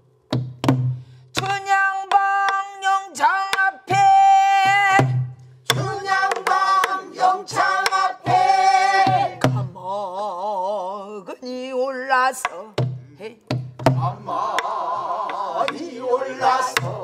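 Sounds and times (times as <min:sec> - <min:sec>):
person singing with vibrato: 0:01.4 - 0:13.4.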